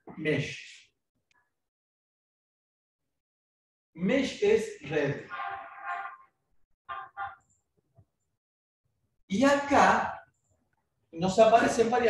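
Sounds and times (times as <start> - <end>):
faint short honks: 5.3 - 6.3.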